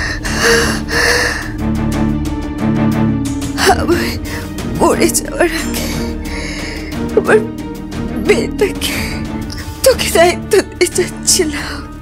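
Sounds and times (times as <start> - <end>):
background music with light beat: 0.0 - 12.0.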